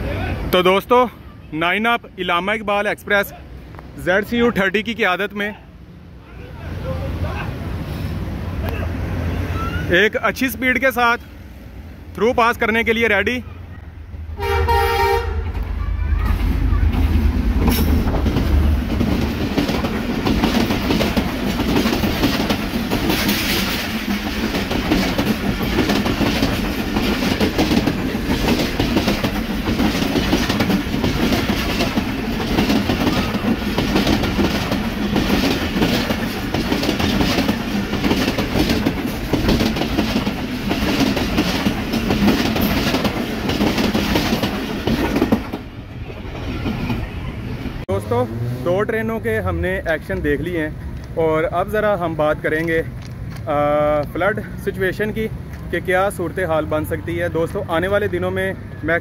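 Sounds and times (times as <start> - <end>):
locomotive engine rumbling: 0.0 - 59.0
train wheels clattering over rail joints: 16.3 - 45.7.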